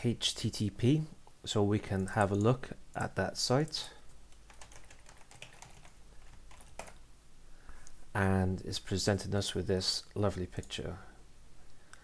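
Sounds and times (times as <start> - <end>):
keyboard typing: 4.3 - 7.0.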